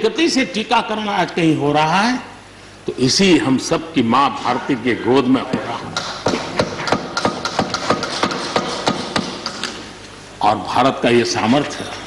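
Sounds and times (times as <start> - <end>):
people thumping desks: 5.6 - 9.8.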